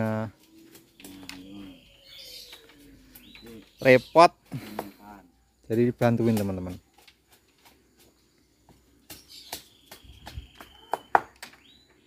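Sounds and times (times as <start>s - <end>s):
faint bird calls: 0.4s - 5.3s, 9.2s - 12.0s.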